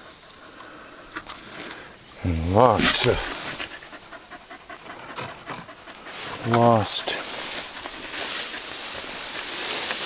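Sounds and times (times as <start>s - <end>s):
dog panting: 2.5s - 10.0s.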